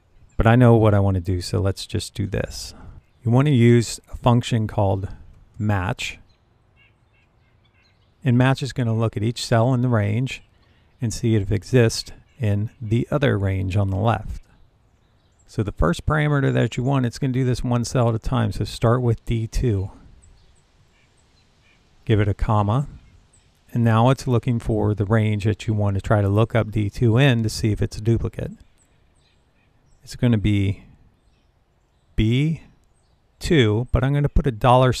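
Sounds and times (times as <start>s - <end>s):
faint bird chirps: 6.1s - 8.3s, 10.0s - 15.7s, 19.9s - 22.1s, 22.7s - 23.8s, 28.5s - 34.5s.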